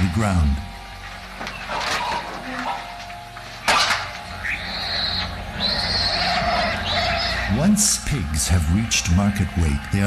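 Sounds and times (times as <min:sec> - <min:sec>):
piglets squealing: 0:04.4 - 0:07.9.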